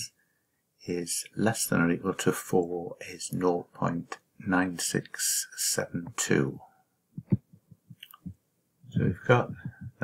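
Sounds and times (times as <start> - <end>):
soft low thumps: 7.2 - 10.0.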